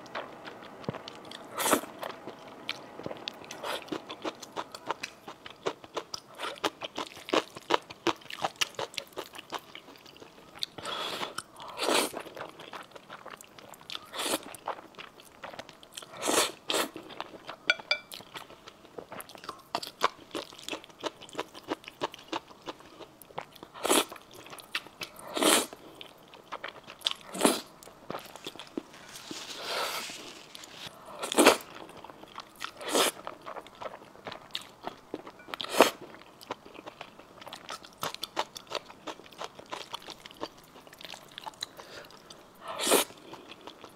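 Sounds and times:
slurping noodles: 27.3s - 31.7s, 42.7s - 43.2s.

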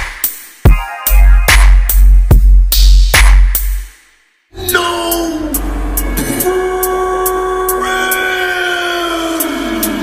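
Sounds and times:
ticking hi-hat: 0.0s - 10.0s.

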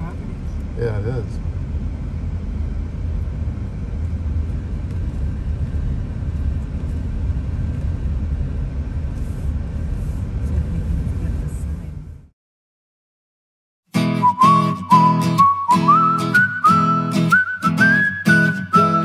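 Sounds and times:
car interior road and engine noise: 0.0s - 12.3s.

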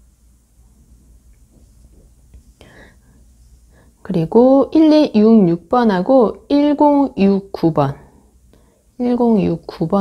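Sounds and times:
person speaking: 4.0s - 8.2s, 9.0s - 10.0s.

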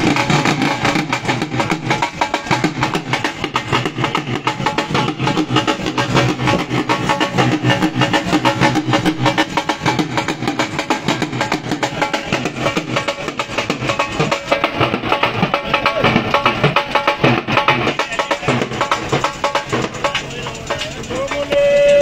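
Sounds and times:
barrel drum beaten with sticks: 0.0s - 22.0s
pitched music: 0.0s - 22.0s.

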